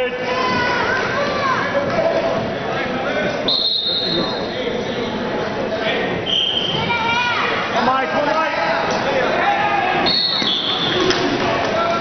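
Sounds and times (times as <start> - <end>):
spectators yelling: 6.7 - 12.0.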